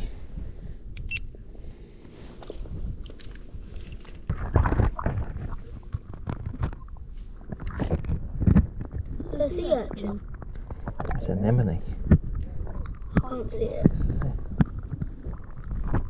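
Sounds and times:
water sloshing: 3.4 - 16.0.

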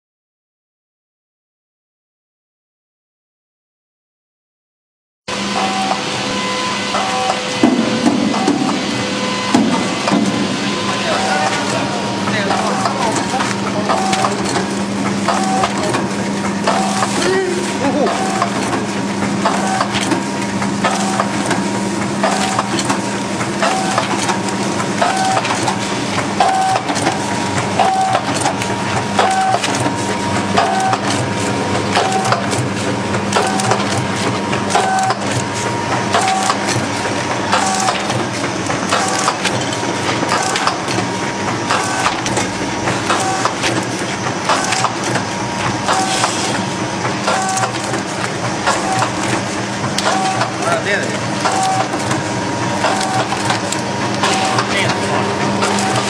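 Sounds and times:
short machine whine: 5.3 - 13.0
machine hum: 5.3 - 56.0
packaging machine clatter: 9.6 - 56.0.

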